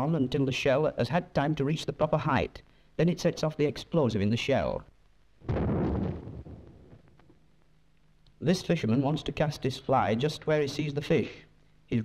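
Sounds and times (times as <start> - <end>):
artillery gun firing: 5.4 - 7.1.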